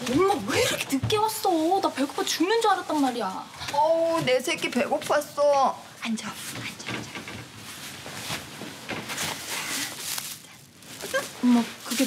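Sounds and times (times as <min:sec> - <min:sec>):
plastic bag rustling: 0:06.4 - 0:12.0
cloth bag rustling: 0:07.4 - 0:12.0.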